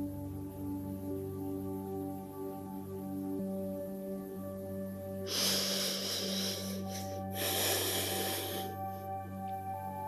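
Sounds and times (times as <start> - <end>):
soft ambient music: 0.0 - 10.0
woman breathing loudly: 5.3 - 9.4.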